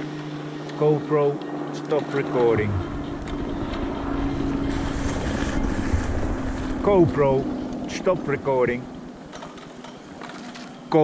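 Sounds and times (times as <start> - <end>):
wind buffeting microphone: 2.6 - 6.8.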